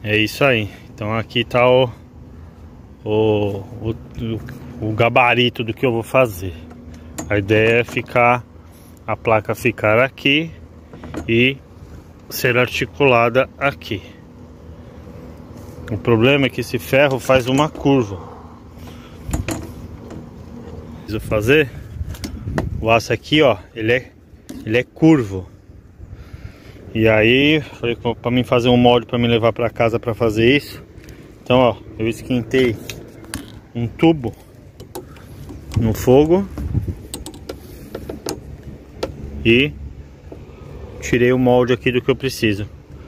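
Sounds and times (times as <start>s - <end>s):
faint steady hum: 0.0s - 43.0s
low background rumble: 0.0s - 43.0s.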